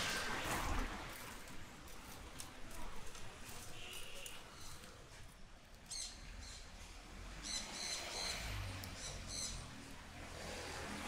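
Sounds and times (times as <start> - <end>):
small birds chirping: 5.7 - 9.9.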